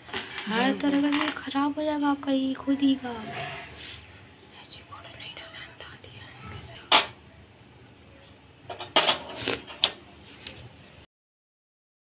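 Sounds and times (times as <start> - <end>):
hushed background voices: 4.4 - 8.6.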